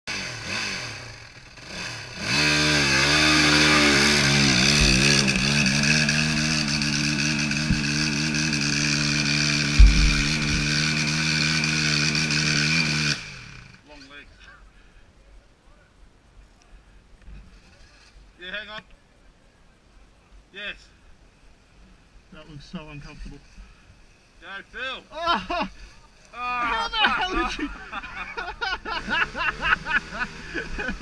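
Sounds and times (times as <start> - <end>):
dirt bike engine revving: 0.1 - 13.8, 28.8 - 31.0
low thumps: 4.2 - 8.4, 9.6 - 11.2.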